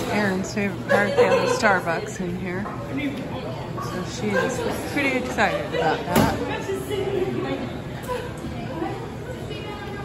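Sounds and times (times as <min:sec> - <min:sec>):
people chattering indoors: 0:00.0 - 0:10.0.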